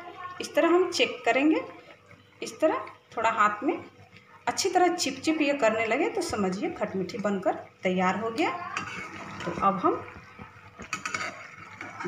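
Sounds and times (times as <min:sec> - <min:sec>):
metal spatula scraping a pan: 0:08.5 - 0:09.9, 0:10.8 - 0:12.0.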